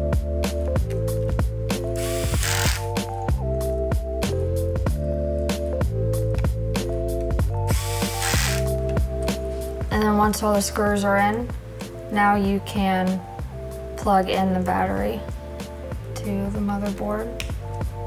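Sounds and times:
background music with steady beat: 0.0s - 18.0s
electric screwdriver whirring: 2.0s - 3.0s, 7.7s - 8.7s.

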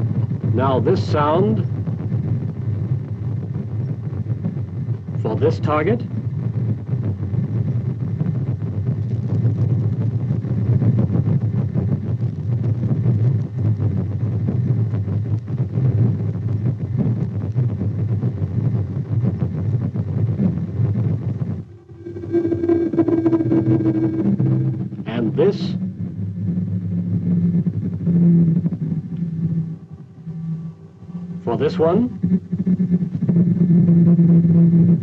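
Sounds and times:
steady hum: 0.0s - 35.0s
rough fluctuating radar noise: 21.5s - 35.0s.

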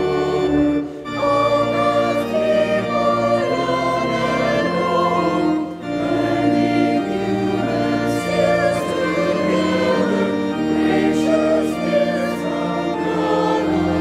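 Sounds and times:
congregation singing a hymn: 0.0s - 14.0s
organ: 0.0s - 14.0s.

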